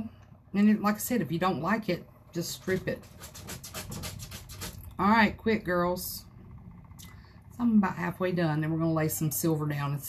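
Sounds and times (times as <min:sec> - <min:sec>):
stick scraping in paper cup: 0:02.4 - 0:04.9.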